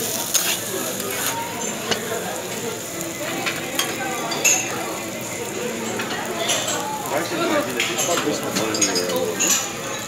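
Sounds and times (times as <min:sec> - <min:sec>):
rice sizzling on a griddle: 0:00.0 - 0:10.0.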